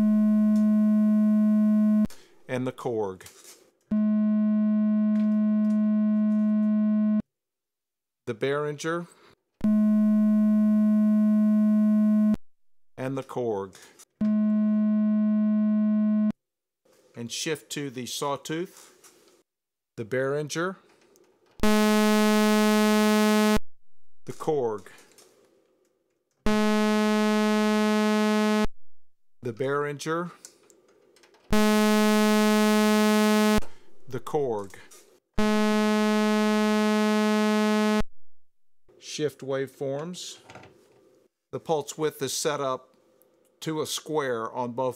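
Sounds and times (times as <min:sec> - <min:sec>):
synthesizer steady tone: 0:26.5 - 0:28.7, 0:31.6 - 0:34.2, 0:35.4 - 0:38.0.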